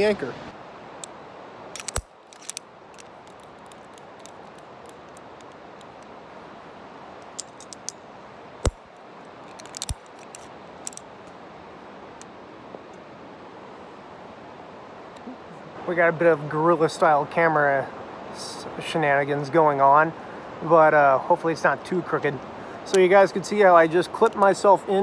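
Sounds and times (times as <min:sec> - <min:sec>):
carabiner clicking and clinking: 0:01.7 - 0:06.1, 0:07.2 - 0:08.0, 0:08.6 - 0:11.1
sharp metal clicks: 0:01.8 - 0:06.1, 0:07.2 - 0:08.0, 0:09.5 - 0:11.1.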